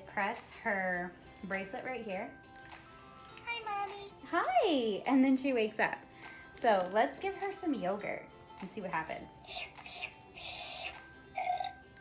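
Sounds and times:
toy doll electronic eating sounds: 9.4 - 11.8.

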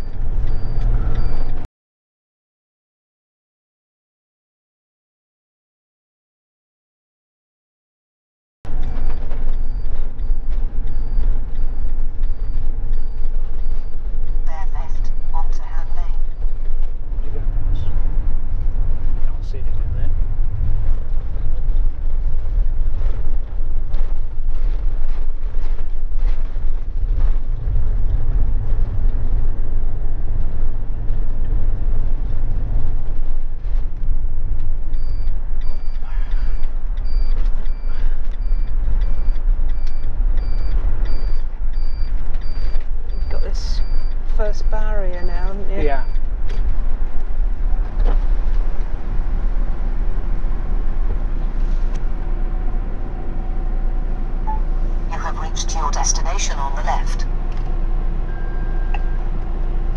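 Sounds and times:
high electronic beep: 0.0 - 1.6, 35.0 - 46.2, 54.5 - 57.2
road and engine rumble: 0.0 - 1.7, 8.7 - 59.9.

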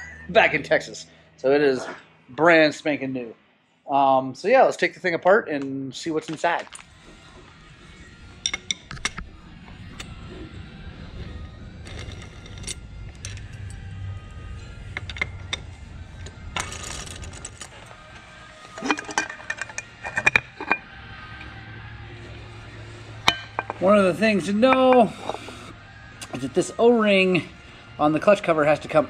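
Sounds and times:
low hum: 6.8 - 29.0
loose metal parts clinking: 14.9 - 20.8, 23.2 - 23.9
metal rattle: 14.9 - 20.8.

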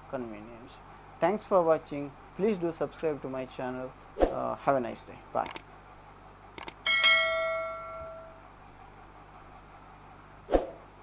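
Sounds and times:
quick clicks: 5.4 - 5.7, 6.6 - 6.8
bright bell ding: 6.9 - 8.4.

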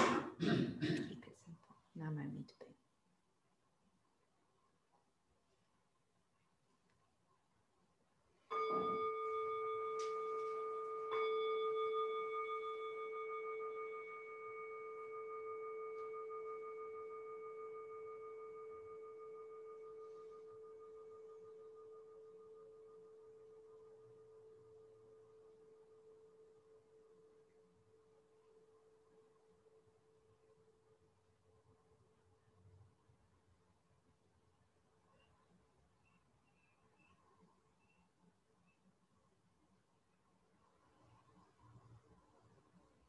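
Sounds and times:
bowl bell ringing: 8.5 - 27.3.

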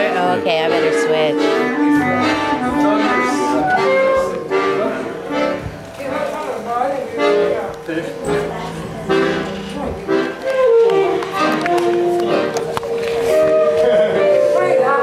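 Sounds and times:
live band music: 0.0 - 15.0.

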